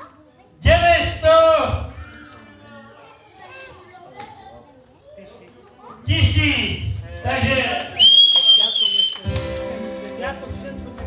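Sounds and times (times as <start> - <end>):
children's voices: 0.0 - 0.6, 1.9 - 6.1
background chatter of guests: 0.0 - 11.0.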